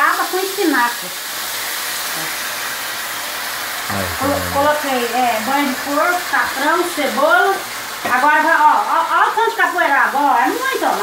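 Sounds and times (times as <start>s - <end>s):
greens sizzling in a hot pan: 0.0s - 3.9s, 4.5s - 11.0s.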